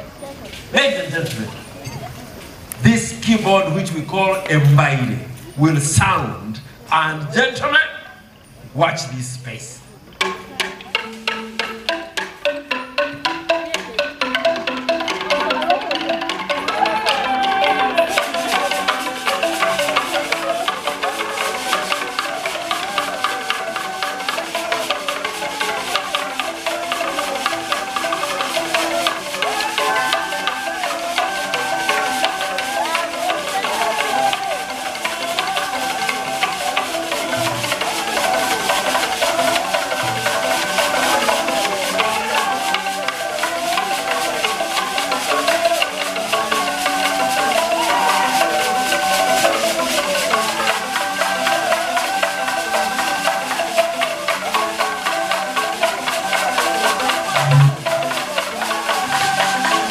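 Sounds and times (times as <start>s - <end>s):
log xylophone playing: 0.0s - 59.9s.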